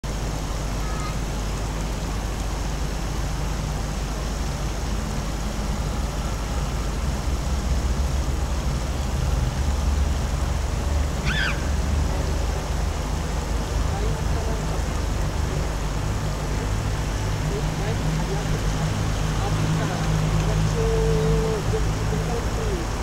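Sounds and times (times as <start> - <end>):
low rumble and hiss: 0.0 - 23.0.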